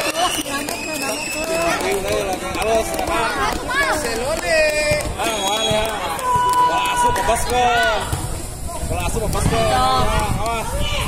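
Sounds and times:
young voices calling out and chattering: 0.0s - 11.0s.

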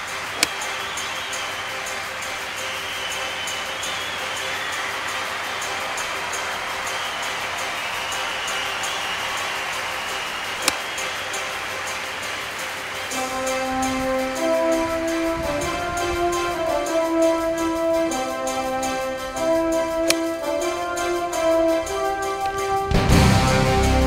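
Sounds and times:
steady outdoor hiss: 0.0s - 24.0s.

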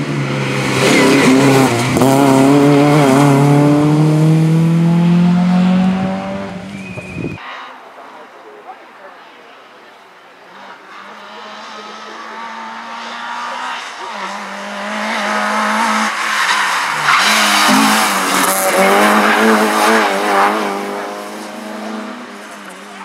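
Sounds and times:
rally car engine revving: 0.0s - 7.8s, 10.5s - 23.0s.

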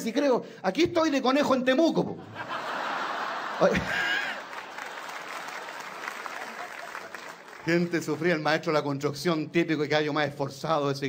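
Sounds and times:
audience applauding: 2.8s - 8.6s.

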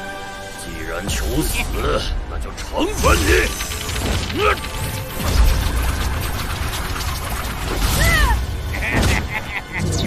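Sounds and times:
fantasy battle music: 0.0s - 10.0s.

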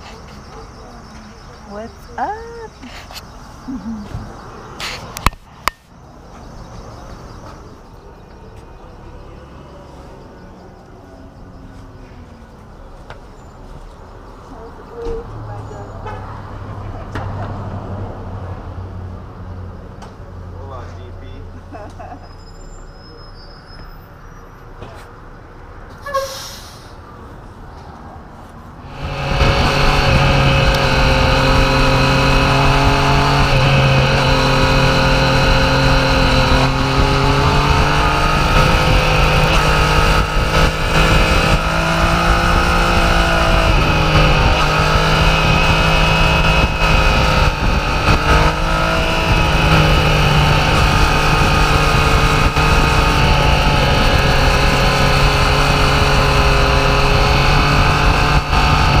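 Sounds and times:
wind rushing: 28.8s - 56.4s
motorcycle engine running: 28.9s - 59.0s.

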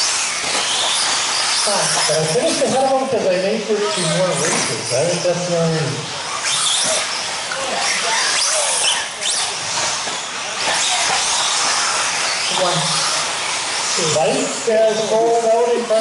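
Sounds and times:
rc car motors whining: 0.0s - 16.0s.

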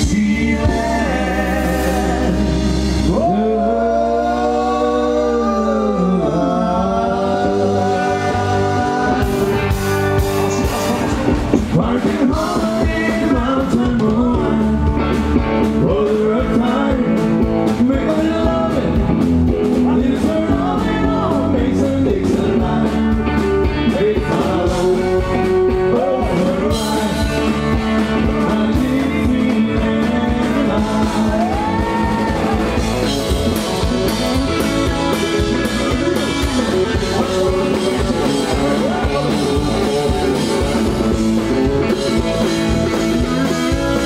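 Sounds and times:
guitar: 0.0s - 44.0s
man singing: 0.0s - 44.0s
steady drum beat: 7.3s - 44.0s.

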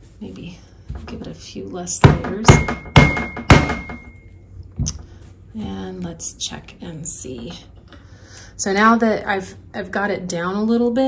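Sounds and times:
hammer tapping on metal: 2.0s - 4.2s.

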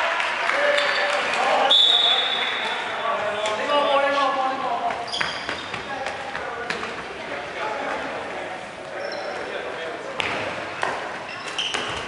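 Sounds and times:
referee's whistle: 1.7s - 2.6s.

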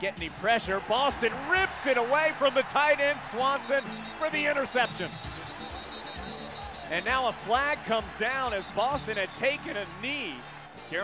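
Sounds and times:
crowd noise: 0.0s - 11.0s
music from the stands: 0.0s - 11.0s.

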